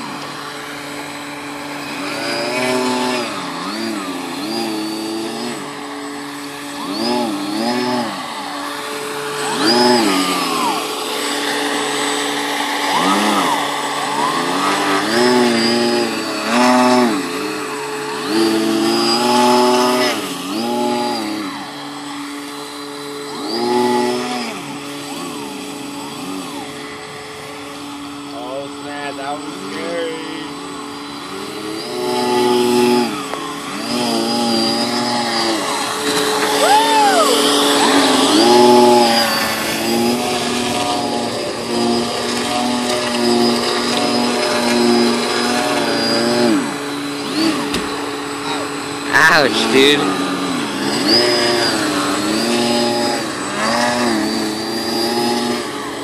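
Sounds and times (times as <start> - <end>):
motor note rising and falling: 0.0 - 56.0
steady motor whine: 0.0 - 56.0.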